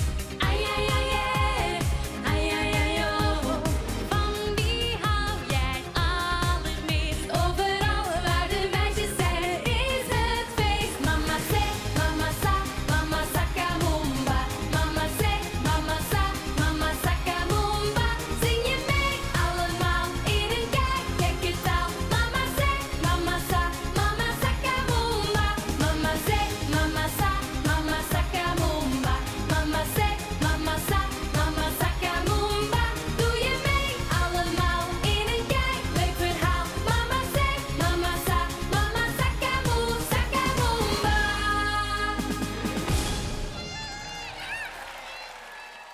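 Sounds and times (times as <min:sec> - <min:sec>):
dance beat: 0:00.0 - 0:41.4
women singing: 0:00.0 - 0:42.9.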